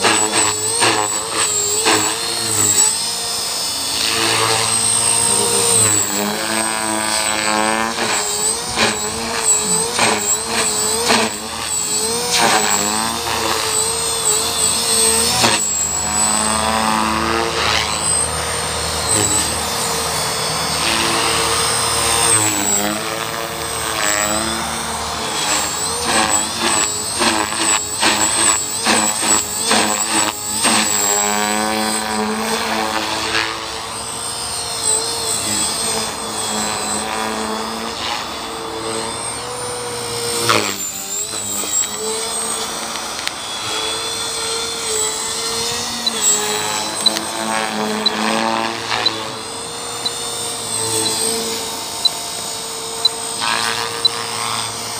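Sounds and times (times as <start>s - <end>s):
rc helicopter motor whine: 0.0s - 54.9s
rotor blade noise: 0.0s - 54.9s.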